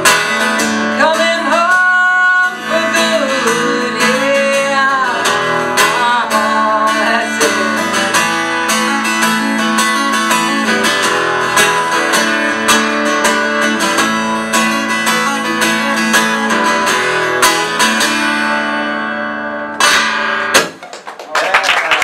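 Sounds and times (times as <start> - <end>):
acoustic guitar strumming: 0.0 - 20.8.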